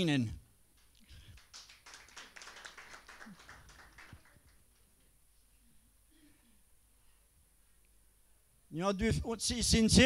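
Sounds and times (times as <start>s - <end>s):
audience clapping: 0.8s - 5.0s.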